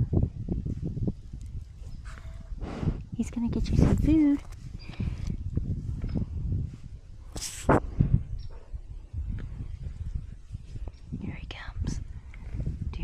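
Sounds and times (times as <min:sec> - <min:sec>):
cow blowing through its nose: 0:02.0 - 0:03.1.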